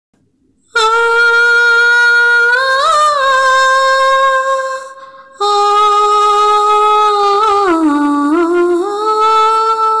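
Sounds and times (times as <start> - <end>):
high voice humming a melody: 0.7 - 10.0.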